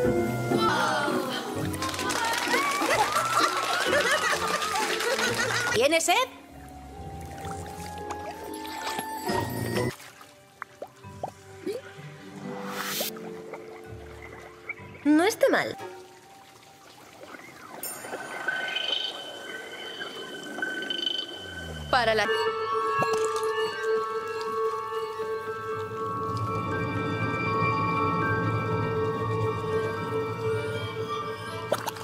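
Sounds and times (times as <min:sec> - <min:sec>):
background music: 0:00.0 - 0:32.0
overlapping voices: 0:00.7 - 0:05.6
watery trickling: 0:06.6 - 0:22.1
shimmering high tone: 0:17.8 - 0:32.0.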